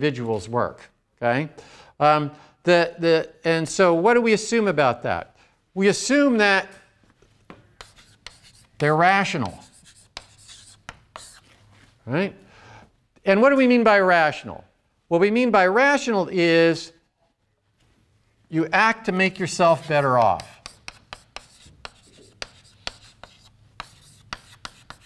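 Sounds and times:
chalk tapping on blackboard: 0:07.5 - 0:11.5, 0:19.7 - 0:25.0
chalk scratching on blackboard: 0:07.8 - 0:11.8, 0:19.1 - 0:25.0.

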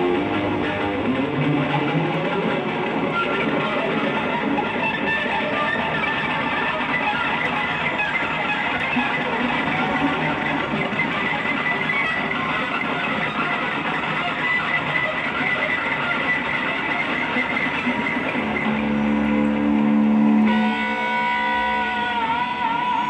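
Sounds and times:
electric guitar: 0:00.0 - 0:23.0
live rock band playing: 0:00.0 - 0:23.0.

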